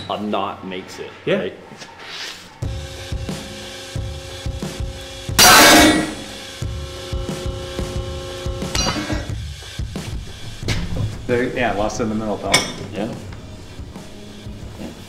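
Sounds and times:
background music with held tones: 0.0 - 15.0.

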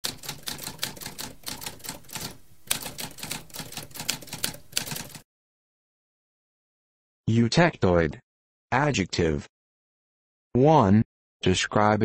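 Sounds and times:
typewriter keys clacking: 0.0 - 5.2.

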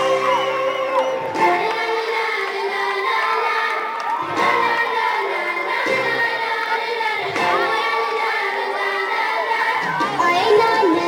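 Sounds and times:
crowd of children cheering: 0.0 - 11.0
music playing: 0.0 - 11.0.

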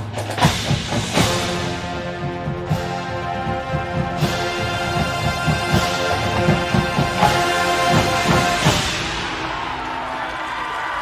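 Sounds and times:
drum and bass drum hits: 0.0 - 10.0
brass hornline chords: 0.2 - 9.8.

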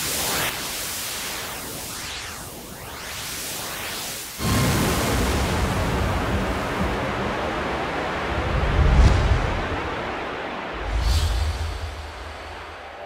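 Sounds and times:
deep rumbling noise: 4.4 - 12.9.

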